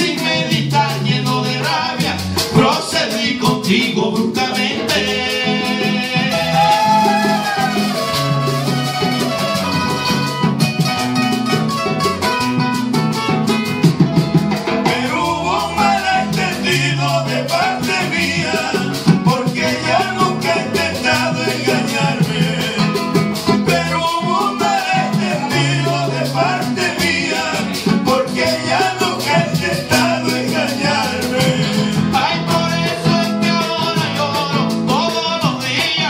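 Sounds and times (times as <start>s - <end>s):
men singing through a pa: 0.0s - 8.5s, 14.8s - 36.0s
acoustic guitars playing: 0.0s - 36.0s
hand drum beat: 0.0s - 36.0s.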